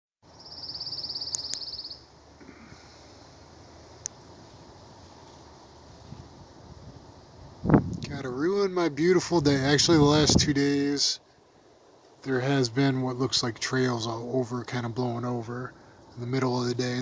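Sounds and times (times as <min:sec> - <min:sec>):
songbird trill: 0:00.2 - 0:07.7
faint outdoor background: 0:00.2 - 0:17.0.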